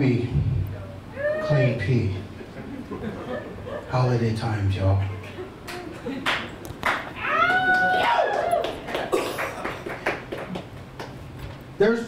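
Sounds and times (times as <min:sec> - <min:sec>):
scattered clapping: 0:05.6 - 0:07.1, 0:07.7 - 0:11.2
crowd yelping: 0:07.2 - 0:08.9.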